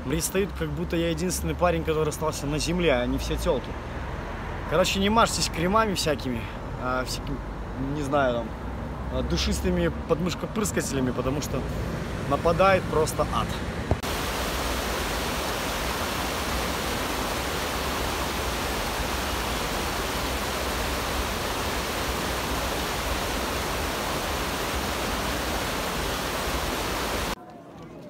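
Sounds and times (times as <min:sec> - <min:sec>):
stream rushing over rocks: 0:13.9 - 0:27.4.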